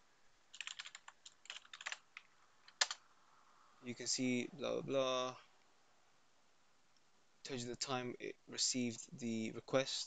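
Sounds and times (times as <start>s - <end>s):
computer keyboard typing: 0.5s - 3.0s.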